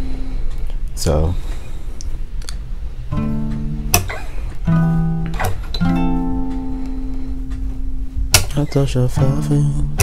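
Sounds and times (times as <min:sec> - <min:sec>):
acoustic guitar chords strummed: 0:03.1 - 0:10.0
sharp click: 0:08.3 - 0:08.8.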